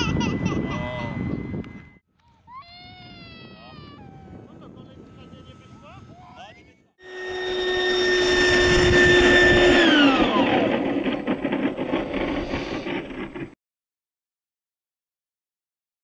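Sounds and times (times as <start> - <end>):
electric ducted fan whining: 0.0 - 13.5
rushing airflow: 7.5 - 13.5.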